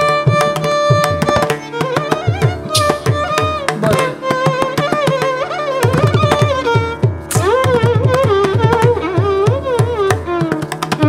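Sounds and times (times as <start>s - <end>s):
violin holding a note: 0.0s - 9.2s
mridangam drum strokes: 0.0s - 11.0s.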